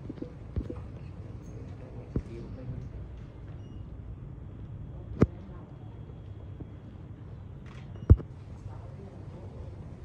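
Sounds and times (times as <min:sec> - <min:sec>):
low room murmur: 0:00.0 - 0:10.0.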